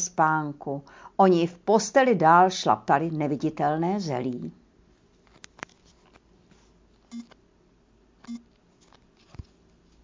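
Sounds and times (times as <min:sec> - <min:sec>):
low buzzy electronic beeps: 0:07.1 - 0:07.4.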